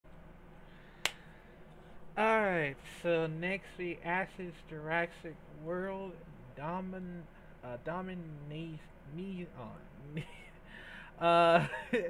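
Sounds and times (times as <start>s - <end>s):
faint low hum: 0.1s - 12.0s.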